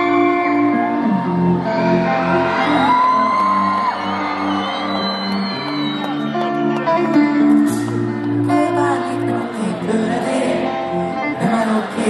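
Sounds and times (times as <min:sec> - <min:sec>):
crowd whooping and shouting: 0:00.0 - 0:08.4
live concert music: 0:00.0 - 0:12.0.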